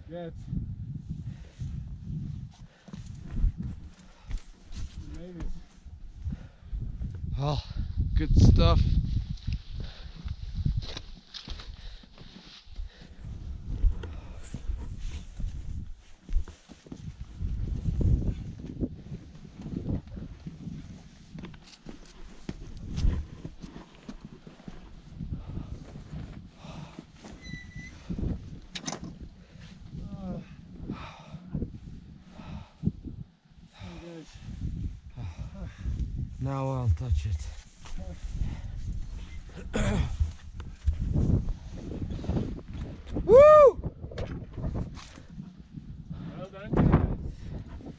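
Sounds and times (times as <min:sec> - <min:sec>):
wind buffeting microphone: 0:00.3 - 0:12.0, 0:12.8 - 0:21.6, 0:22.4 - 0:23.6, 0:24.9 - 0:47.9.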